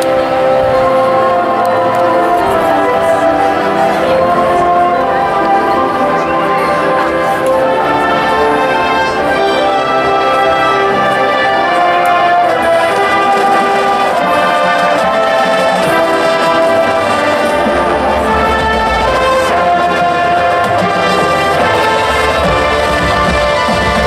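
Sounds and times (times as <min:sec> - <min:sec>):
deep low brass notes: 0:00.0 - 0:24.0
marching band brass chords: 0:00.0 - 0:24.0.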